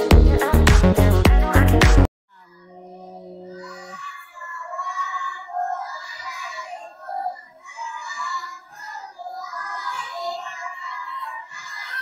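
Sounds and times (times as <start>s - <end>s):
young children singing in chorus: 2.4s - 12.0s.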